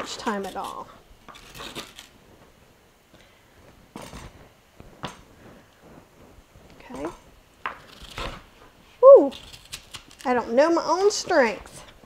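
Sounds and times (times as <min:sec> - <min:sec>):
spoon scraping squash: 0:00.0 - 0:02.2, 0:09.2 - 0:11.9.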